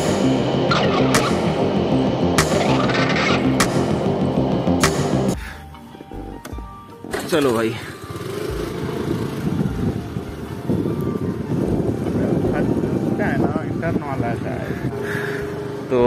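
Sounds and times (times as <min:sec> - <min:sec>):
motorbike engine running: 0:07.1 - 0:10.3
wind on microphone: 0:08.7 - 0:15.0.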